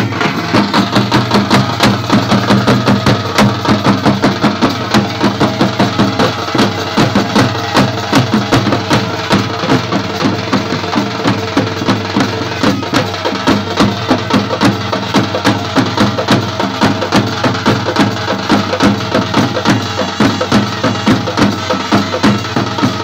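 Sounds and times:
barrel drums beating: 0.0 - 23.0.

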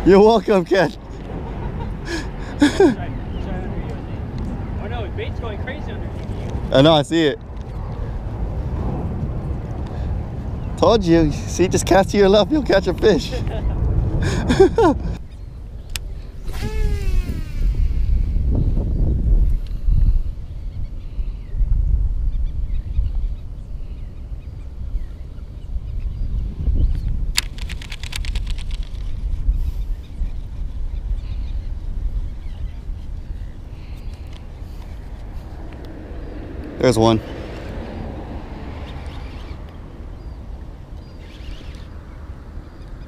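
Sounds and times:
quick run of clicks: 27.0 - 29.4.

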